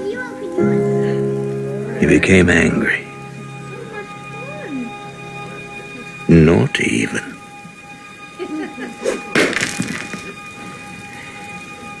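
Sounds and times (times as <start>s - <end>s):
faint steady background tones: 0.0s - 12.0s.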